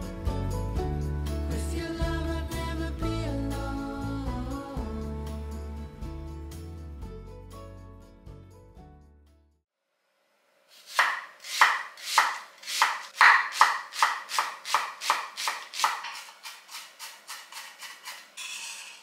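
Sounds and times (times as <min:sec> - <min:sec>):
knife blade scraping board: 0:10.7 - 0:19.0
knife chopping on wooden board: 0:10.8 - 0:18.4.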